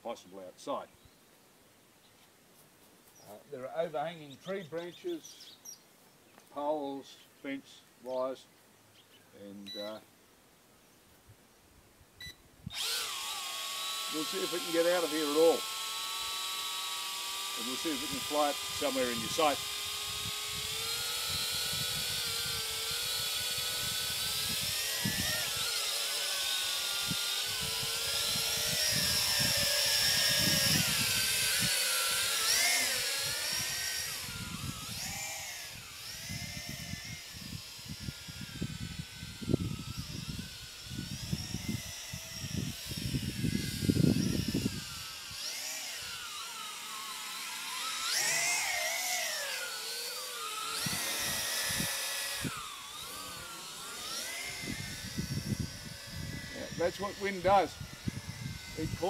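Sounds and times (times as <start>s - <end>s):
drone motors whining: 12.7s - 59.0s
wind buffeting microphone: 27.0s - 31.8s, 36.3s - 45.1s, 50.8s - 53.6s, 54.4s - 59.0s.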